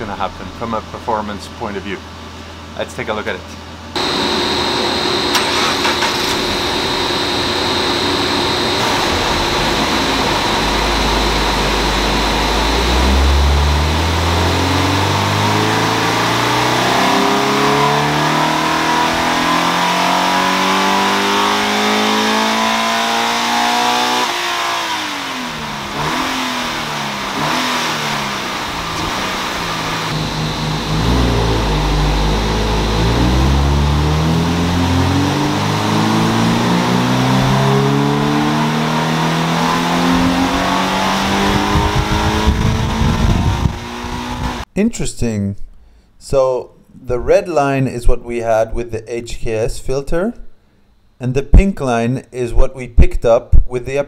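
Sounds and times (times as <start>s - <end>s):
car engine revving on dyno: 3.9s - 44.7s.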